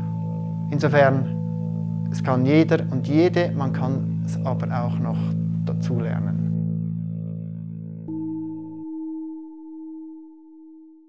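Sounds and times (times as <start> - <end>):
bell-like tone ringing: 8.1 - 11.0.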